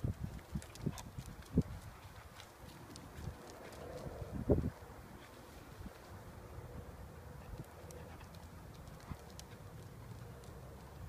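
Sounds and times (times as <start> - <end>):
dog paws thumping on concrete: 0.0 - 6.2, 7.4 - 11.0
dog claws clicking: 7.6 - 11.0.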